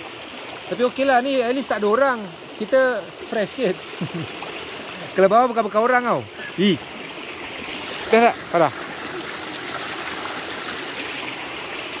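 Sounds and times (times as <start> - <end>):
stream flowing over rocks: 0.0 - 12.0.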